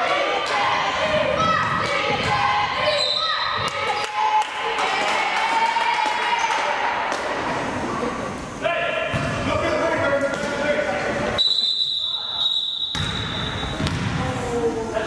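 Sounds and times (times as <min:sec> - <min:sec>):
voices calling out in a gym: 0:00.0 - 0:15.0
high whistle blast: 0:11.4 - 0:13.8.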